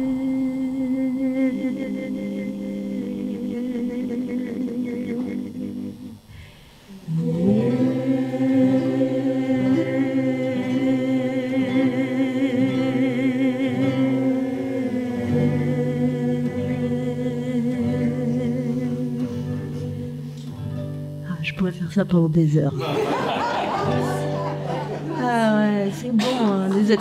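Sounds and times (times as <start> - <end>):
group singing in harmony: 0.0 - 6.3, 6.9 - 20.7, 22.8 - 25.2.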